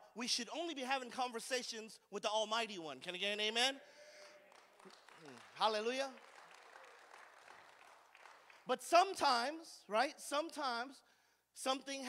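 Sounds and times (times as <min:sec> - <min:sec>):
faint scattered applause: 0:04.2 - 0:08.7.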